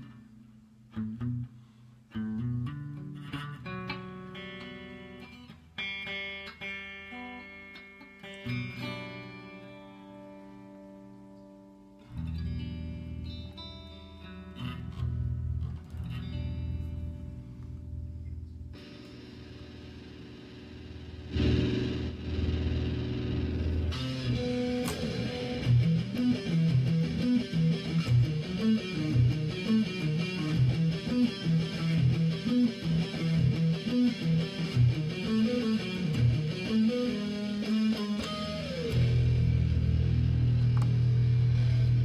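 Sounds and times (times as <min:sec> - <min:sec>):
electric guitar playing: 0:00.0 - 0:42.0.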